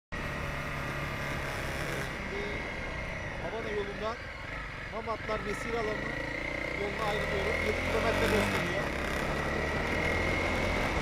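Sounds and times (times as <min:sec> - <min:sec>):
wind and road noise: 0:00.1 - 0:11.0
motorcycle engine running: 0:00.2 - 0:11.0.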